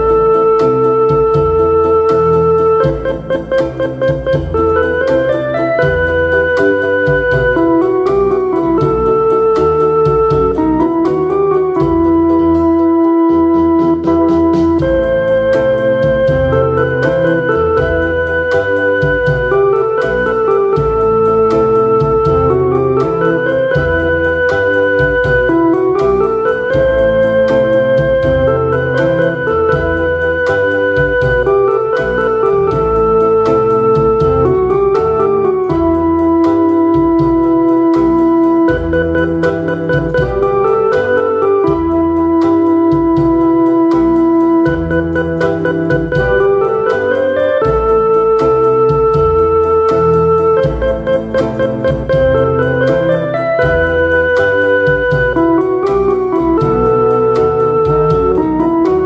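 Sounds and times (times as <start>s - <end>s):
bass line: 0.0s - 59.0s
keyboard melody notes: 0.0s - 59.0s
steady drum beat: 0.0s - 59.0s.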